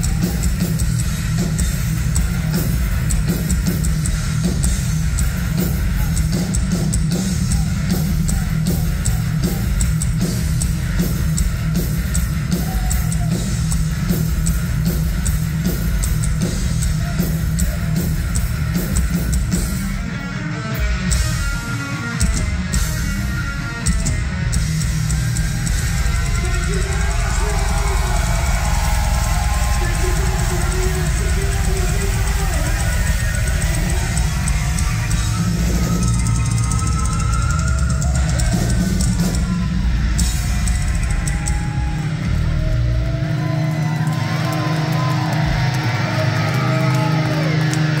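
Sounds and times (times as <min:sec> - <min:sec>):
bass guitar: 0:00.0 - 0:48.0
distorted electric guitars: 0:00.0 - 0:48.0
drum kit: 0:00.0 - 0:48.0.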